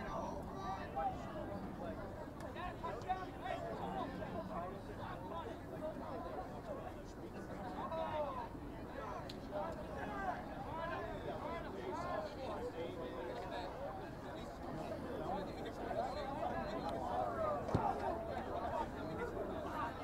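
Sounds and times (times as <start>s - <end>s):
voices calling and chattering: 0.0s - 20.0s.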